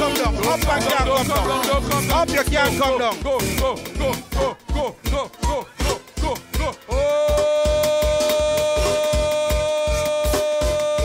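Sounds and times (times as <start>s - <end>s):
upbeat music with bass drum: 0.0s - 11.0s.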